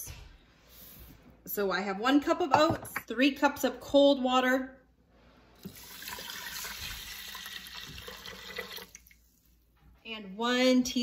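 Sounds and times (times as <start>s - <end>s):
water pouring into metal pot: 5.6s - 9.2s.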